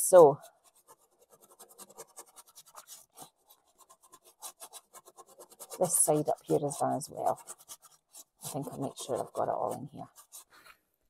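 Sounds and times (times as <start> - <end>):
brush scrubbing over plastic stencil: 0.0 - 10.9.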